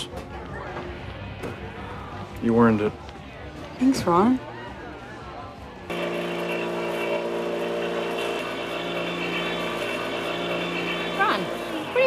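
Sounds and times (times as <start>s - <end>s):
floor sander motor humming: 5.9s - 12.0s.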